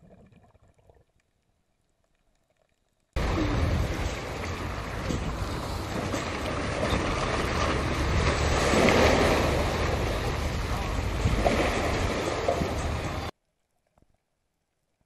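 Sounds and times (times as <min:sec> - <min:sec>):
loud water splash: 0:03.2 - 0:13.3
steady low rumble: 0:03.2 - 0:13.3
wind buffeting microphone: 0:03.2 - 0:13.3.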